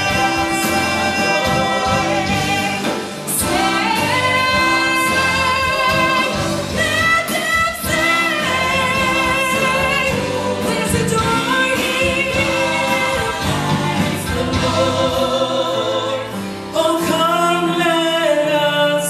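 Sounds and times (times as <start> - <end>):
woman singing into microphone: 0.0 - 14.6
live band with drums and bass: 0.0 - 18.0
harmony singers: 0.0 - 19.0.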